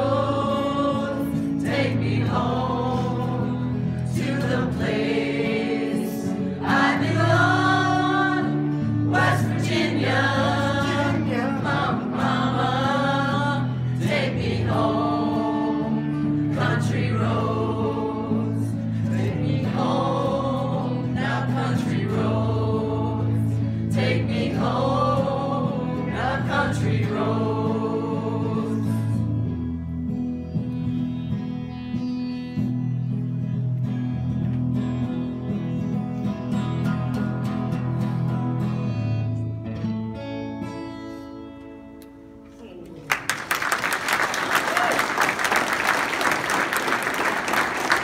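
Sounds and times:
group of voices singing: 0.0s - 29.3s
acoustic guitar: 0.0s - 43.3s.

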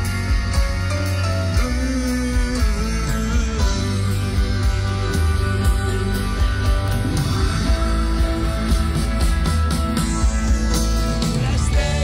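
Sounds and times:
bass guitar: 0.0s - 12.0s
drums: 0.0s - 12.0s
electric guitars: 0.0s - 12.0s.

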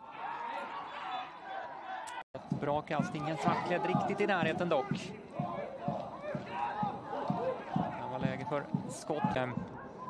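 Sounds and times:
shouts and chatter of voices: 0.0s - 10.0s.

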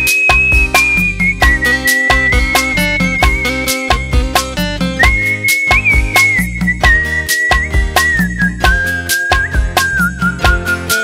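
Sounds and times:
instrumental backing with percussion beat: 0.0s - 11.0s
person whistling a melody: 0.0s - 11.0s.

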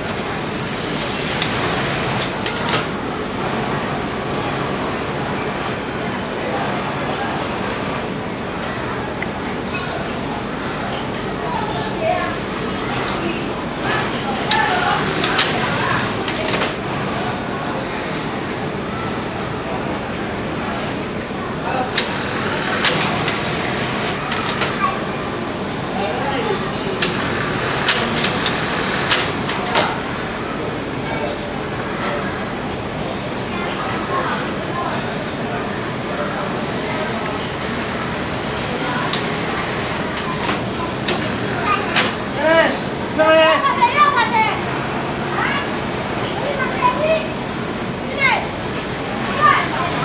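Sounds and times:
industrial sewing machines running: 0.0s - 4.8s, 13.6s - 17.3s, 21.8s - 25.2s, 26.9s - 30.3s, 37.5s - 43.0s, 48.6s - 50.0s.

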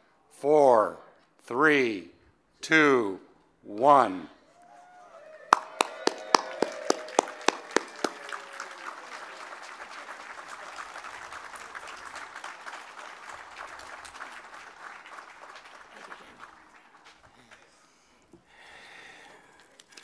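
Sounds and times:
audience applauding: 4.6s - 17.9s
close single claps: 5.5s - 17.6s.

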